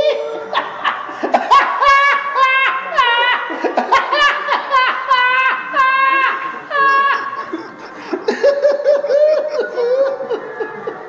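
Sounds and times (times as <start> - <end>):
woman laughing loudly: 0.0 - 11.0.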